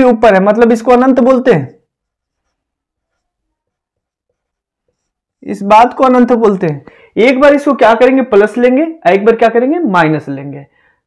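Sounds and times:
marker squeaking on whiteboard: 1.8 - 5.4.

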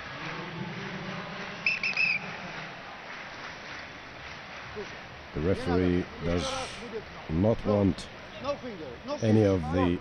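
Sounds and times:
arena background noise: 0.0 - 10.0
referee's whistle blasts: 1.6 - 2.2.

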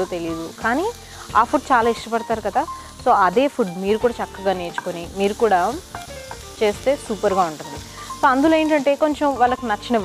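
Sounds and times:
woman's voice: 0.0 - 5.8, 6.6 - 10.0
vegetables sizzling in a wok: 0.0 - 10.0.

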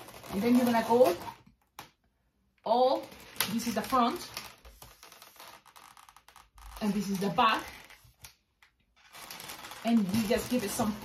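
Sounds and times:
latex balloons rubbing and squeaking: 0.0 - 1.4, 2.8 - 8.1, 9.0 - 11.0
person speaking: 0.3 - 1.4, 2.6 - 4.4, 6.8 - 7.8, 9.8 - 11.0.

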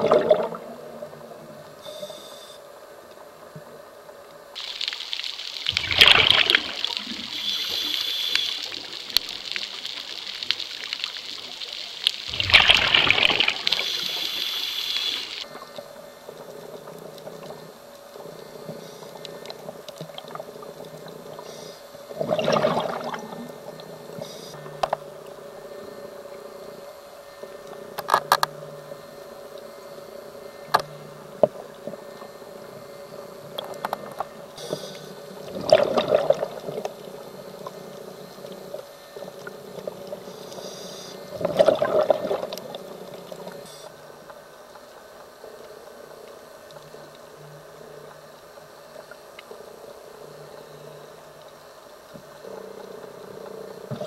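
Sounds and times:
exhaled bubbles underwater: 0.0 - 1.6, 4.6 - 15.8, 22.1 - 24.2, 32.7 - 40.3, 41.2 - 43.7
steady low hum: 5.2 - 54.0.

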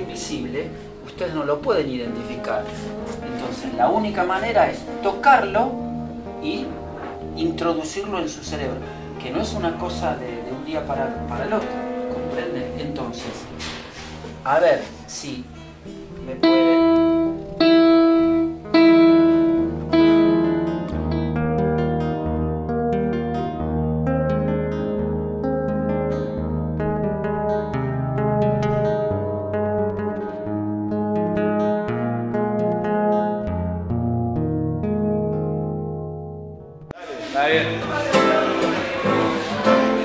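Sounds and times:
acoustic guitar strumming: 0.0 - 40.0
digital piano notes: 0.0 - 40.0
digital piano note: 9.5 - 14.3, 15.0 - 21.4.

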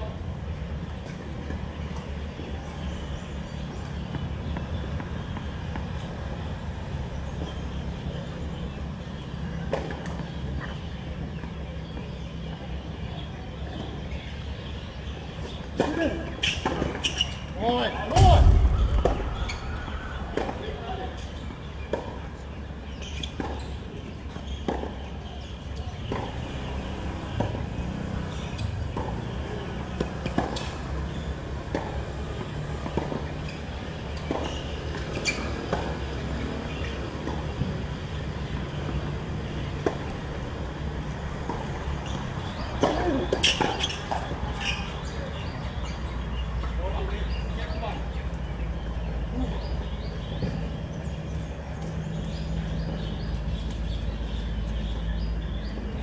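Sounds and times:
tennis balls struck by rackets: 18.0 - 26.4, 27.4 - 45.5.

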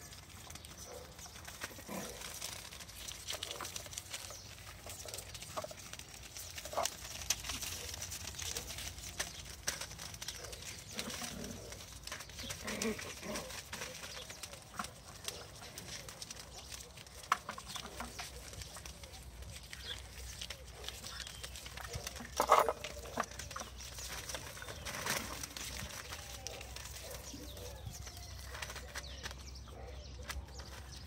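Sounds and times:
puppies scuffling on newspaper: 0.0 - 31.0.

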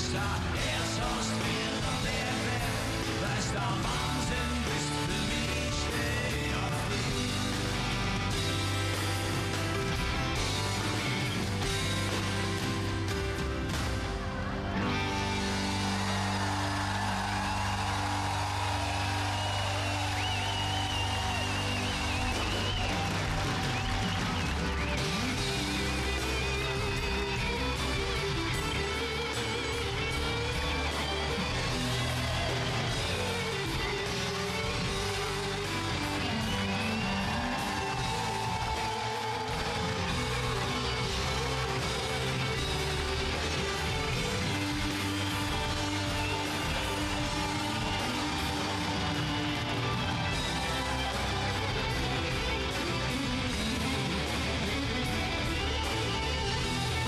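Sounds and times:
live band playing: 0.0 - 57.0
sustained bass notes: 0.0 - 57.0.

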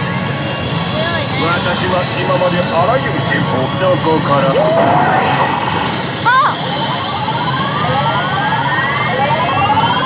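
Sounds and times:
gaming parlour din: 0.2 - 10.0
steady high tone: 1.4 - 10.0
rising stepped electronic tone: 3.0 - 10.0.

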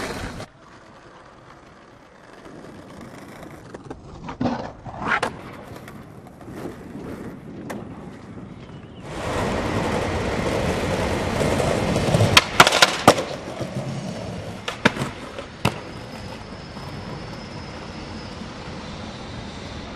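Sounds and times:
skateboard clacking on ground: 0.0 - 17.4
skateboard wheels rolling: 0.0 - 19.9.

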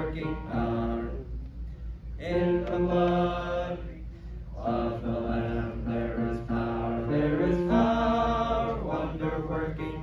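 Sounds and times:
group singing a hymn: 0.0 - 1.3, 2.2 - 10.0
steady low hum: 0.0 - 10.0.

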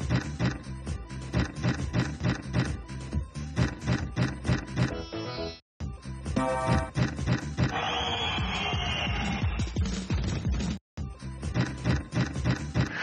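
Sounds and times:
slot machine music with steady beat: 0.0 - 7.8.

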